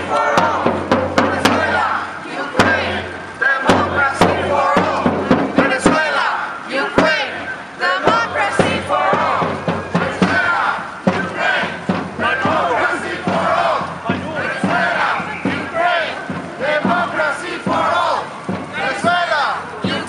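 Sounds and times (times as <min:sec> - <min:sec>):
crowd shouting: 0:00.0 - 0:20.0.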